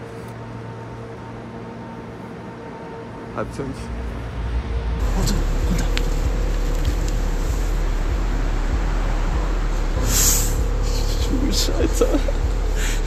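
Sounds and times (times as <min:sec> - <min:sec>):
car engine and tyres: 0:00.0 - 0:13.0.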